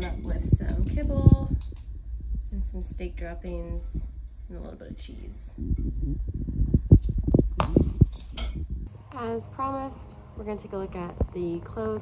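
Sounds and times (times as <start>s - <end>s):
low handling rumble: 0.0s - 12.0s.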